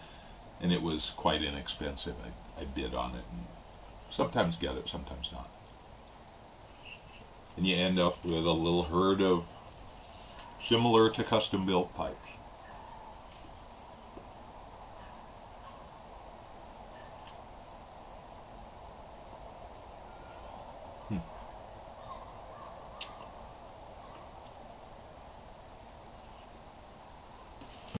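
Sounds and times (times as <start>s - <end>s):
faint hiss: 0.0s - 28.0s.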